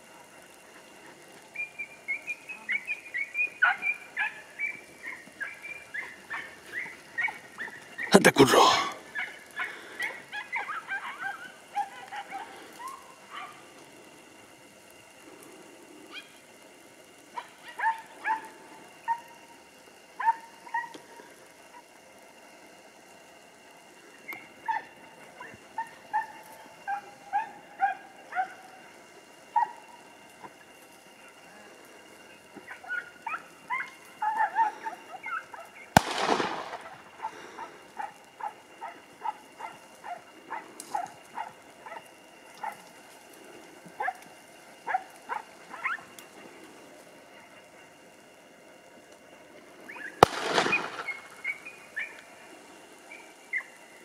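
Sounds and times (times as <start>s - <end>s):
hounds yelping: 0.3s - 8.1s, 9.0s - 13.8s, 16.1s - 16.4s, 17.3s - 19.5s, 20.1s - 22.0s, 24.2s - 30.6s, 32.4s - 46.4s, 49.9s - 52.3s, 53.1s - 53.8s.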